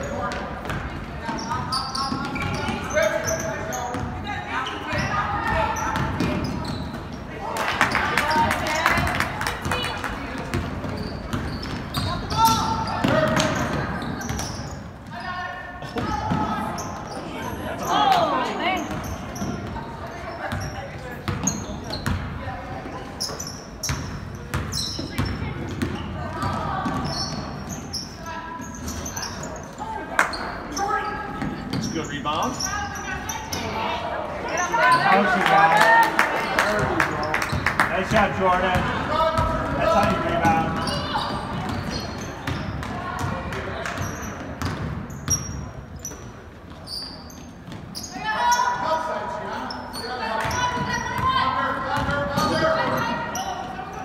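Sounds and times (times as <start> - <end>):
basketball bouncing on wooden floor: 38.7 - 45.5.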